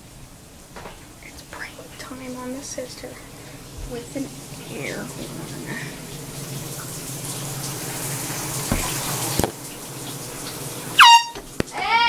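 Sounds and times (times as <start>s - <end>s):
person whispering: 1.2s - 2.2s.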